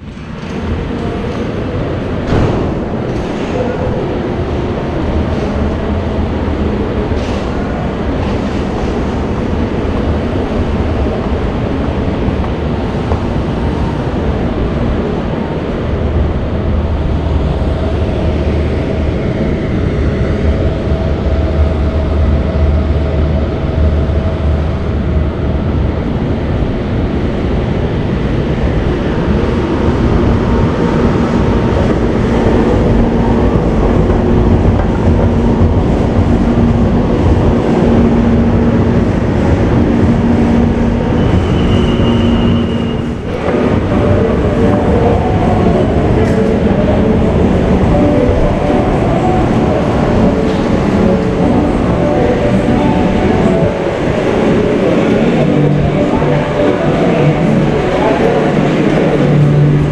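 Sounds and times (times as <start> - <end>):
moving walkway mechanical rumble: 0.0 - 59.9.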